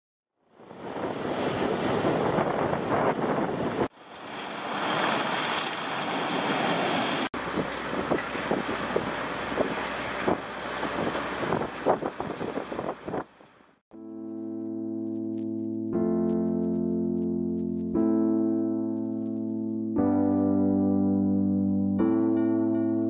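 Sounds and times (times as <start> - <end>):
wind buffeting microphone: 0.8 - 13.3
surf over pebble beach: 4.0 - 11.6.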